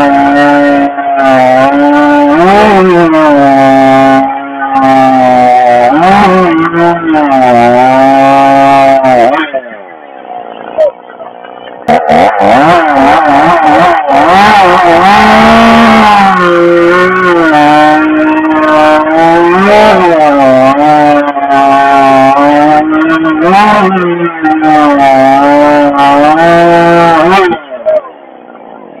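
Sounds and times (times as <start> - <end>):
chainsaw engine revving: 0.0 - 9.6, 11.7 - 27.7.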